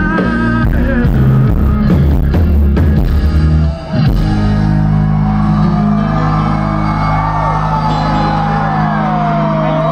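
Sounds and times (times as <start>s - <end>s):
country band sustained chord: 0.0s - 9.9s
crowd shouting and whooping: 3.2s - 9.9s.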